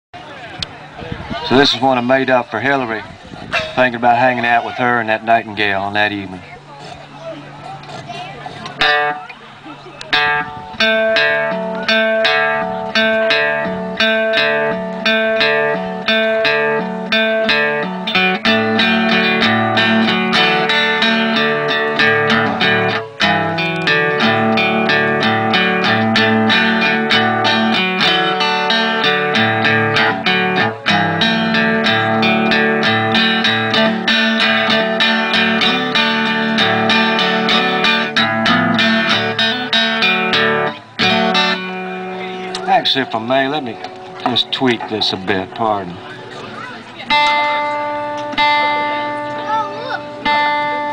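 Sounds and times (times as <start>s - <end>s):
solo acoustic guitar: 3.2s - 50.9s.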